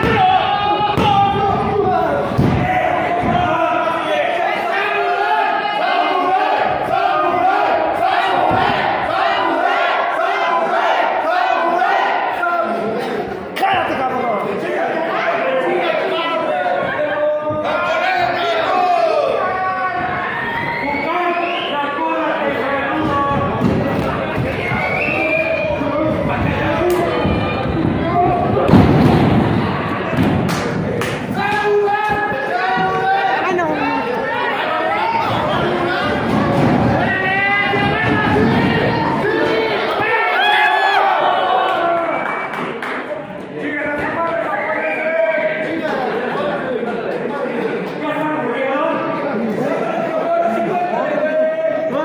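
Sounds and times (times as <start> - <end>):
crowd shouting and yelling: 0.0 - 52.0.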